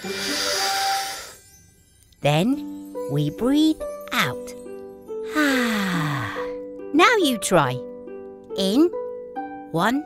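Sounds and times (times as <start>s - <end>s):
hissing inhale: 0.0s - 1.5s
soft background music: 0.0s - 10.0s.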